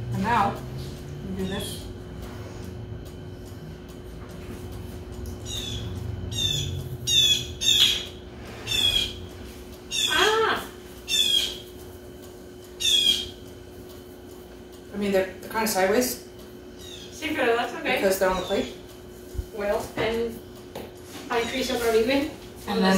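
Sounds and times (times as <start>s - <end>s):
bird calling: 5.4s - 11.7s, 12.7s - 13.4s, 16.7s - 17.2s, 18.3s - 18.8s.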